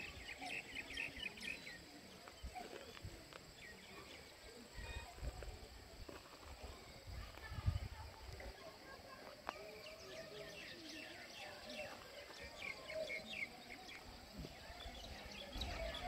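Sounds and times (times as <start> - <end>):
wind rumble on microphone: 7.0 - 8.4.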